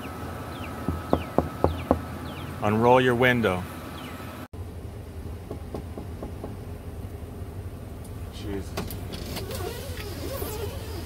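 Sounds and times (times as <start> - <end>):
birds chirping: 0.0 - 4.5
sharp knocks: 5.4 - 6.6.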